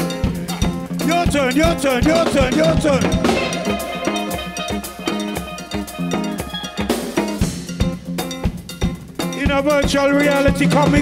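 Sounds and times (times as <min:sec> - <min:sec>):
bass: 0:00.0 - 0:11.0
drums: 0:00.0 - 0:11.0
person singing: 0:02.2 - 0:06.4
cowbell struck with drumstick: 0:02.5 - 0:09.4.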